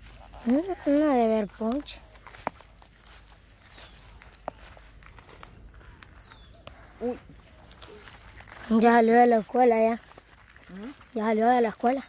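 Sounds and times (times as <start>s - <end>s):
footsteps through dry grass: 0.0s - 12.0s.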